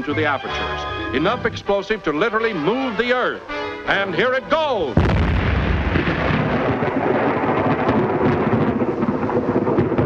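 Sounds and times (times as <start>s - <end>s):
explosion rumble with crackle: 5.0s - 10.0s.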